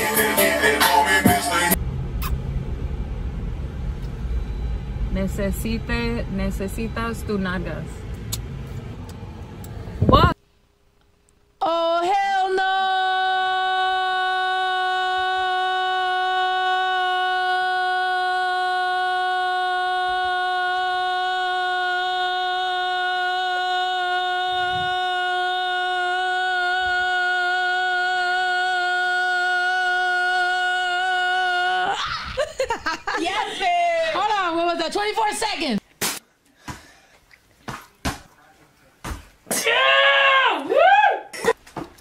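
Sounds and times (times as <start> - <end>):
woman laughing: 32.0 - 34.2.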